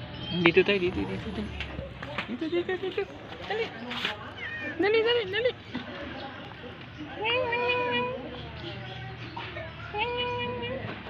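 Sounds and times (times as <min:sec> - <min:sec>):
cat meowing: 0:04.3 - 0:05.0.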